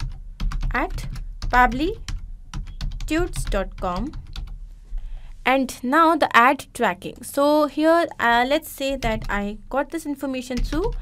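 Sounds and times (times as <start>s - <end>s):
computer keyboard typing: 0.0s - 4.6s, 8.9s - 9.5s, 10.5s - 11.0s.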